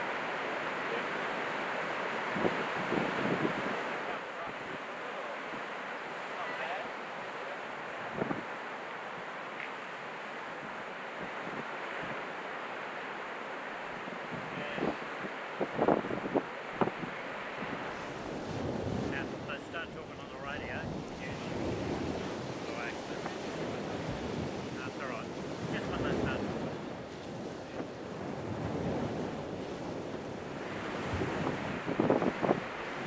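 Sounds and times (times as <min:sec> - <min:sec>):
wind on microphone: 0:00.0 - 0:05.8, 0:07.8 - 0:09.3, 0:10.5 - 0:12.4, 0:13.9 - 0:33.0
surf: 0:00.0 - 0:33.0.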